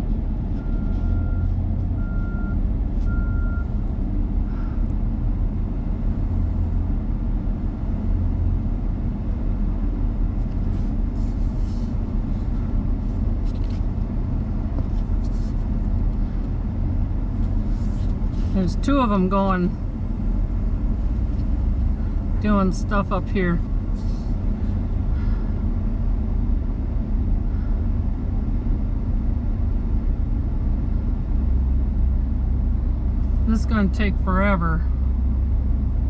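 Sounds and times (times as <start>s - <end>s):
vehicle engine rumble: 0.0s - 36.0s
reversing alarm beeps: 0.6s - 3.7s.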